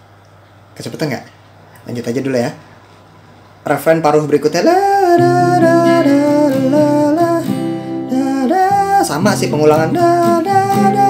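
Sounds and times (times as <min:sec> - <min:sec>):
acoustic guitar strumming: 0:04.7 - 0:11.0
hummed melody: 0:04.7 - 0:11.0.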